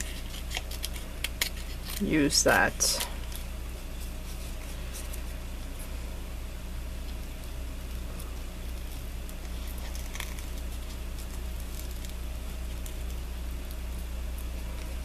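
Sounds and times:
scissors snipping paper: 0.0 - 3.3
steady low hum: 0.0 - 15.0.

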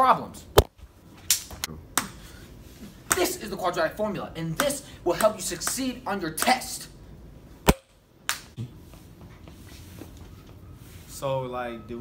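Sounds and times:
sharp snap: 7.7 - 8.6.

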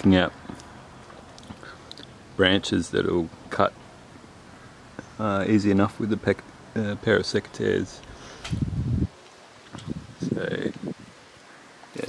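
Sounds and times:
wind buffeting microphone: 8.4 - 11.2.

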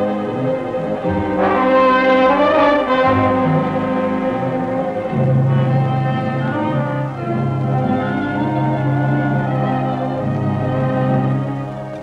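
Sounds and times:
orchestral film score chords: 0.0 - 12.0.

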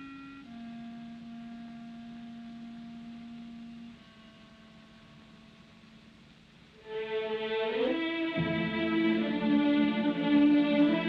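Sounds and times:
orchestra holding soft notes: 0.0 - 6.0, 6.7 - 11.0.

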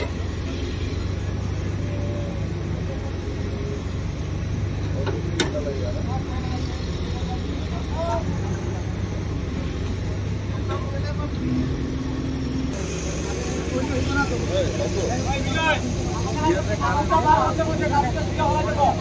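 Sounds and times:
engine low drone: 0.0 - 19.0.

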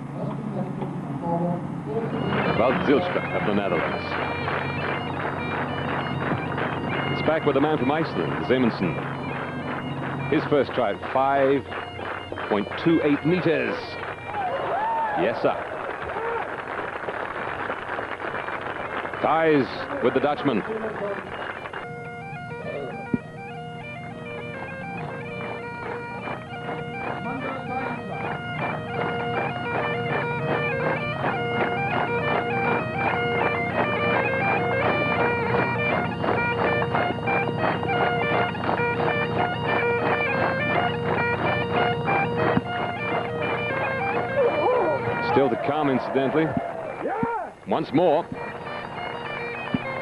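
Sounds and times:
bagpipes playing over a drone: 1.6 - 50.0.

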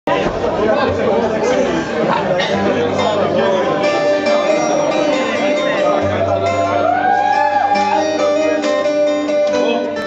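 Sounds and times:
people chattering: 0.1 - 10.0.

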